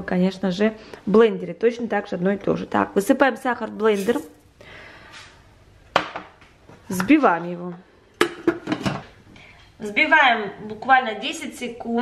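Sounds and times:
sugar pouring into steel bowl: 3.8 - 4.4.

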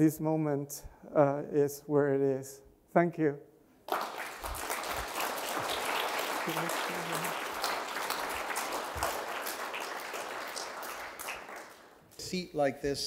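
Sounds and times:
audience applauding: 3.9 - 12.1.

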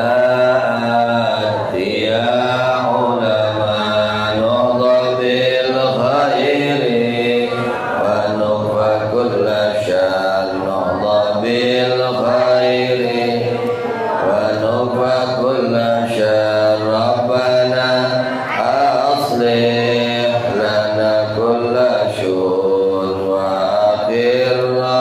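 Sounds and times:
man chanting a prayer: 0.0 - 25.0.

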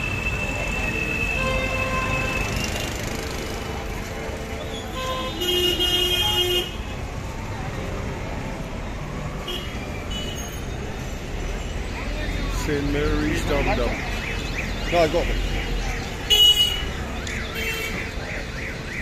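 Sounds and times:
road traffic: 0.0 - 19.0
vehicle horn: 1.1 - 2.6, 4.7 - 6.9.

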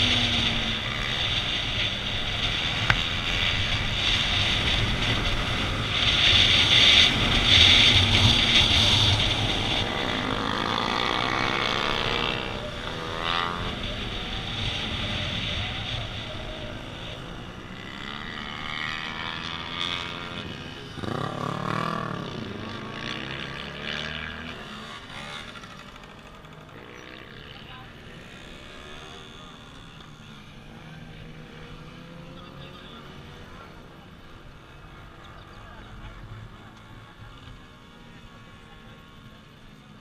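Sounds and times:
motorcycle engine revving: 0.0 - 40.0.

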